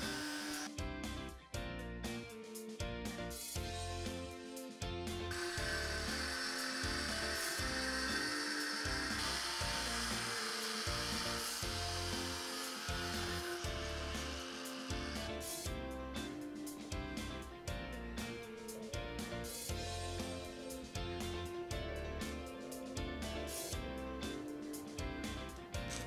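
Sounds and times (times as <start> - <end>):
angle grinder cutting metal: 0.0 - 0.7, 5.3 - 15.7
background music with steady beat: 0.0 - 26.0.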